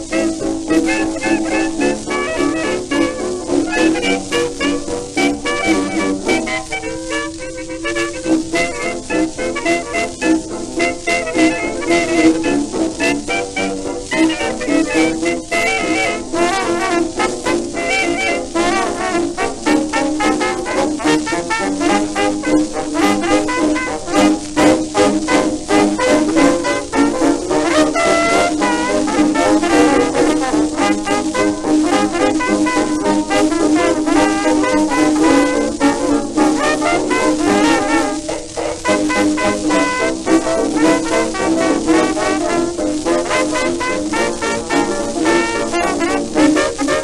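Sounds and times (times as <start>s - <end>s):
dance orchestra playing foxtrot: 0.0s - 47.0s.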